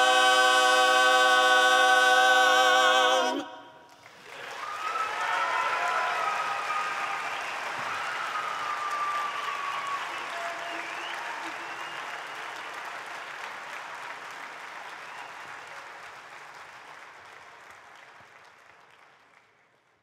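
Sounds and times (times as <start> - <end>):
audience applauding and cheering: 3.9 - 19.9.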